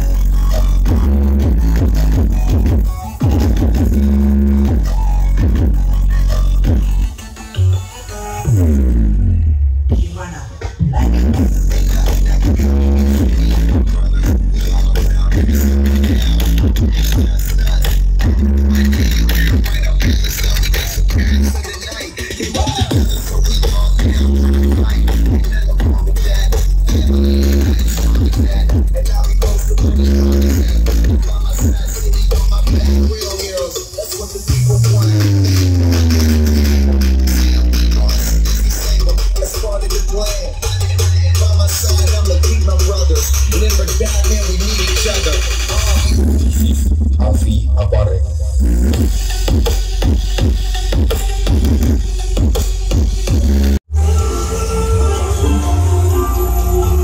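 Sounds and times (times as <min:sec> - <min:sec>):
loud electronic dance music: 0:00.0 - 0:57.0.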